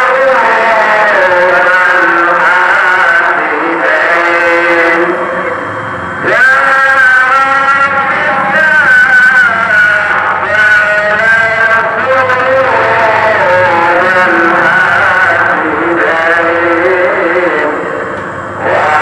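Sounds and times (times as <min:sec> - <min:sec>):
man chanting: 0:00.0 - 0:05.6, 0:06.2 - 0:19.0.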